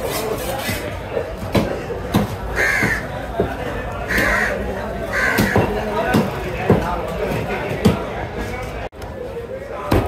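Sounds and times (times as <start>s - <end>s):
crow cawing: 2.5s - 3.1s, 4.1s - 5.7s.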